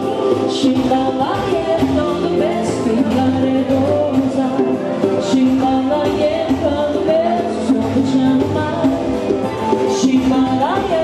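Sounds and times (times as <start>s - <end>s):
keyboard accompaniment: 0.0s - 11.0s.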